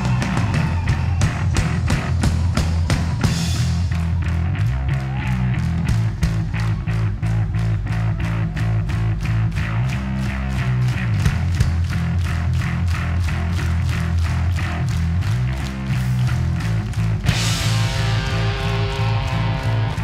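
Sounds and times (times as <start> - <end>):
bass guitar: 0.0 - 20.0
driving drum beat: 0.0 - 20.0
electric guitar: 0.0 - 20.0.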